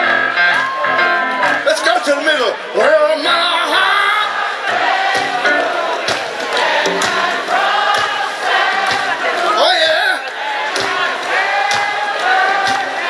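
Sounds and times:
live band playing: 0.0s - 2.0s, 4.7s - 8.0s
voices singing together: 3.5s - 13.0s
steady drum beat: 4.6s - 9.9s, 10.5s - 13.0s.

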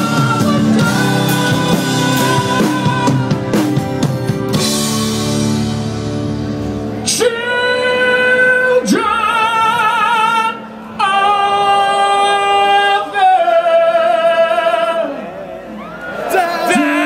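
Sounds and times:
man singing long high notes: 0.0s - 3.6s, 7.0s - 15.3s, 16.3s - 17.0s.

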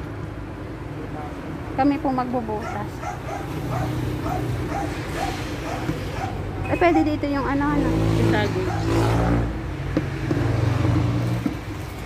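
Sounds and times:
dog yapping: 2.6s - 7.2s, 8.5s - 9.3s.

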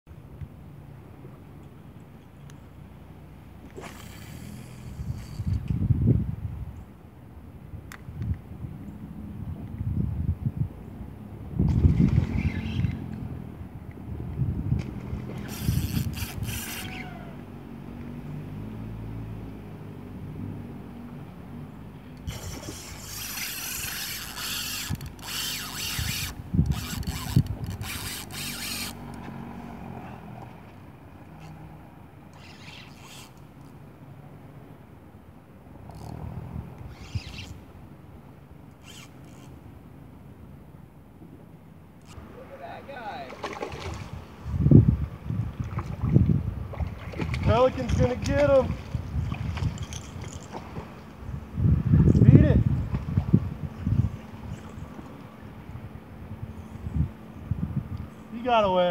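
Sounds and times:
fishing reel whirring: 3.7s - 5.7s, 15.4s - 17.3s, 22.2s - 29.2s, 32.3s - 33.7s, 35.9s - 36.2s, 36.8s - 37.6s, 38.7s - 39.6s
wind buffeting microphone: 4.6s - 6.9s, 7.6s - 17.1s, 22.3s - 29.0s, 43.5s - 58.6s.

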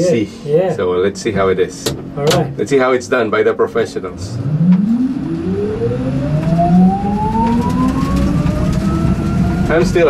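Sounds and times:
road and tyre rumble: 4.2s - 10.0s
electric motor whine: 4.3s - 10.0s.

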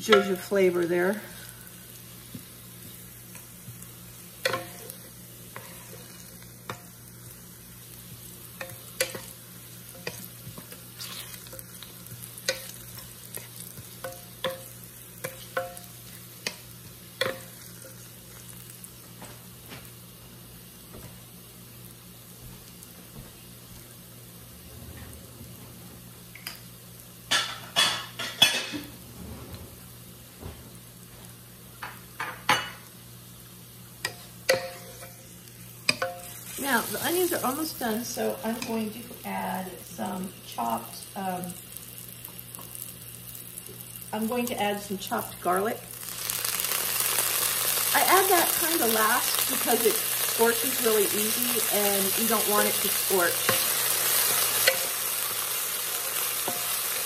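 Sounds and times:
onion rings sizzling in oil: 0.0s - 24.6s, 26.0s - 29.0s, 29.8s - 57.0s
wooden spatula scraping a pot: 5.5s - 6.2s, 9.9s - 11.7s.

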